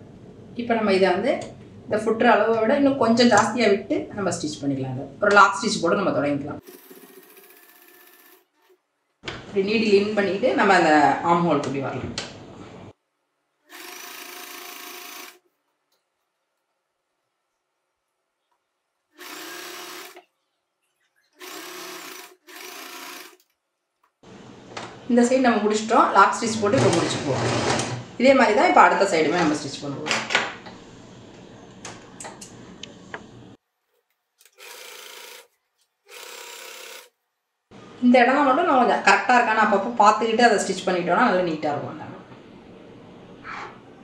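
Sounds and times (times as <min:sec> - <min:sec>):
sewing machine stitching: 0:06.6 - 0:08.8, 0:13.7 - 0:15.4, 0:19.2 - 0:20.2, 0:21.4 - 0:23.4, 0:26.6 - 0:28.1, 0:34.5 - 0:35.5, 0:36.1 - 0:37.1.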